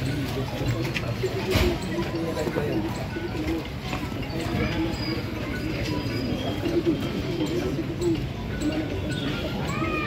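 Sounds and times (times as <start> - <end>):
bird cooing: 4.3 - 9.8.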